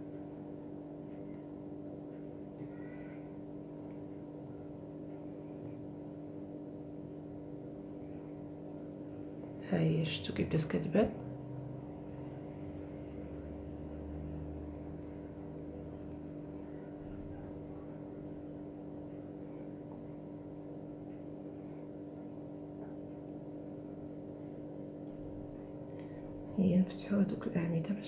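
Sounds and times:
steady background hum: 0.0s - 28.0s.

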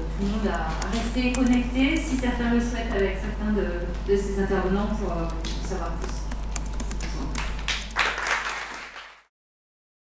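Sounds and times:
audience applauding: 7.0s - 9.3s.

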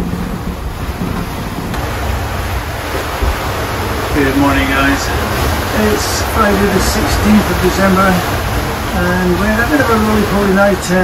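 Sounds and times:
deep constant rumble: 0.0s - 11.0s
rush of wind and water: 0.0s - 11.0s.

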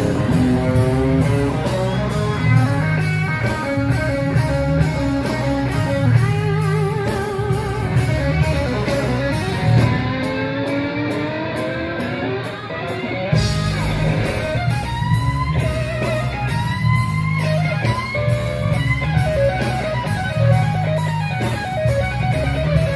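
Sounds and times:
bass and drums: 0.0s - 22.9s
electric guitar soloing: 0.0s - 22.9s.

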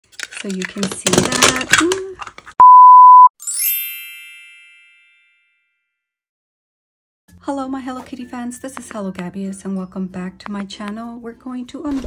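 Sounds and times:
high pure tone beep: 2.6s - 3.3s
bright sparkling chime: 3.4s - 5.6s.

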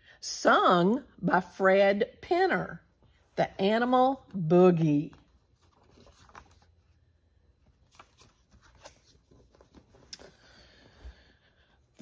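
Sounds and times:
pages turning: 5.1s - 7.0s, 7.6s - 10.3s
paper rustling: 5.1s - 7.0s, 7.6s - 10.3s.

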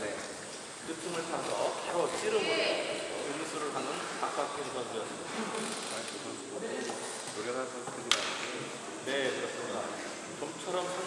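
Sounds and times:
murmur of echoing voices: 0.0s - 11.0s
steady high hiss: 0.0s - 11.0s.

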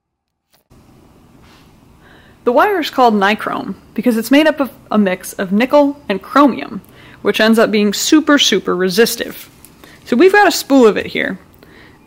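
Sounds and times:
faint steady hiss: 0.5s - 12.0s.

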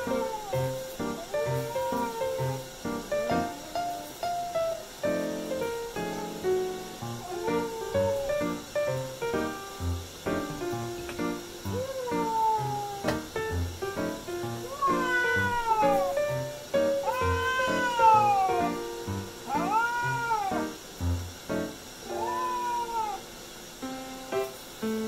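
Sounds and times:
cat meowing: 0.0s - 4.2s, 6.1s - 8.6s, 11.7s - 13.6s, 14.5s - 18.8s, 19.4s - 20.8s, 22.0s - 23.3s.

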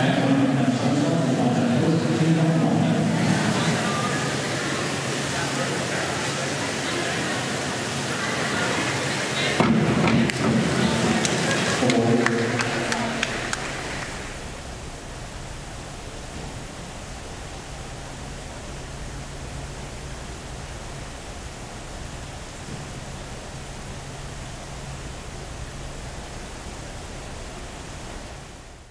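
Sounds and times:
spectators' voices: 0.0s - 14.5s
faint low hum: 0.0s - 28.9s
steady hiss: 0.0s - 28.9s.

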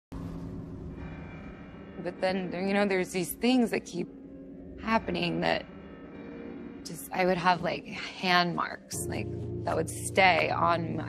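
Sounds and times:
low rumble: 0.1s - 11.0s.

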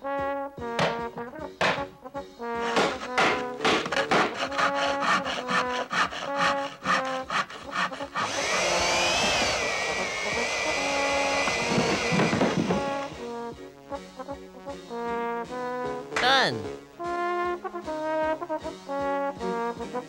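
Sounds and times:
brass background music: 0.0s - 8.2s, 11.2s - 20.0s
hammer blows on nail: 0.6s - 1.9s, 2.5s - 13.3s
power tool motor whining: 7.3s - 13.3s.

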